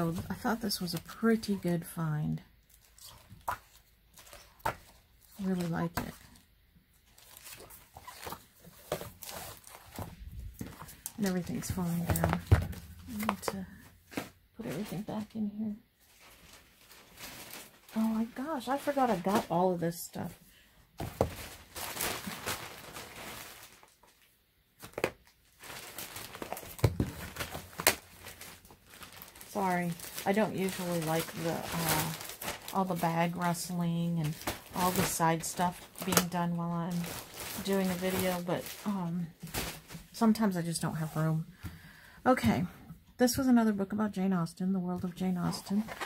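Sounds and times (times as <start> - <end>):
book pages rustling: 7.0 - 14.4
bag rustling: 16.0 - 19.8, 21.0 - 24.1, 25.6 - 40.1
books knocking: 21.0 - 21.5.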